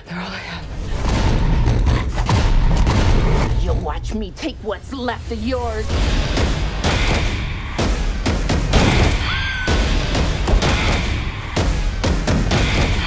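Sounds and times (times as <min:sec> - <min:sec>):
dramatic trailer music: 0:00.0 - 0:13.0
sharp gunshots and impacts: 0:06.1 - 0:13.0.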